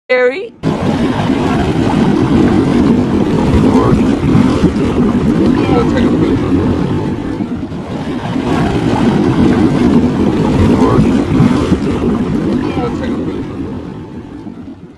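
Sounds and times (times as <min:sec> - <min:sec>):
hot tub jets churning water: 0:00.1 - 0:14.9.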